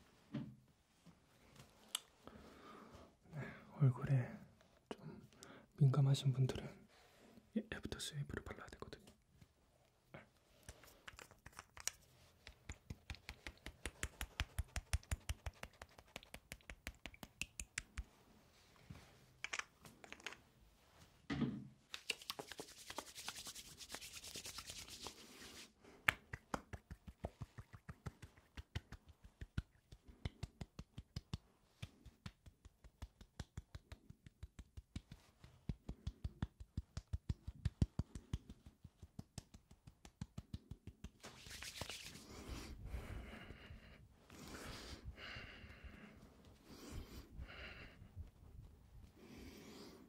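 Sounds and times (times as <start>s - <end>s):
hands patting skin: 10.5s - 18.3s, 19.4s - 20.5s, 21.9s - 48.4s
hands rubbing together: 10.5s - 18.4s, 21.9s - 42.8s.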